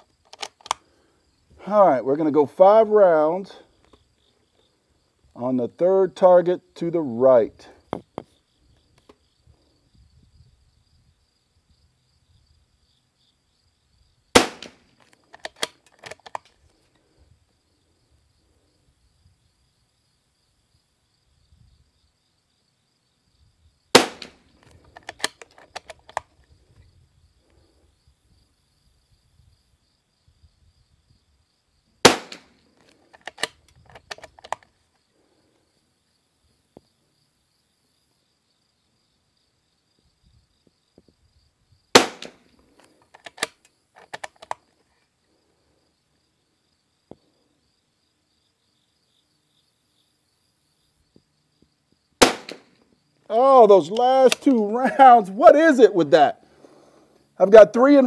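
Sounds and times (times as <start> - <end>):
rifle bolt clicks: 0.2 - 0.8, 14.4 - 16.5, 24.0 - 26.3, 33.1 - 34.7, 42.0 - 42.4, 43.1 - 44.6
rifle shots: 14.4 - 15.7, 23.9 - 24.4, 32.0 - 32.6, 41.9 - 42.4, 52.2 - 52.8.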